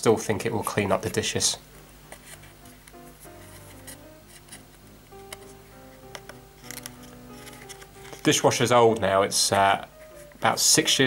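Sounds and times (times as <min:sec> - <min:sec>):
quiet background music: 0:00.0 - 0:11.0
metal pick scraping plastic: 0:02.1 - 0:08.4.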